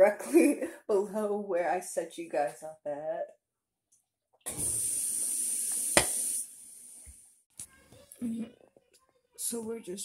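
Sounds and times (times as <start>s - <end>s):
dishwasher water spray hiss: 4.5s - 7.2s.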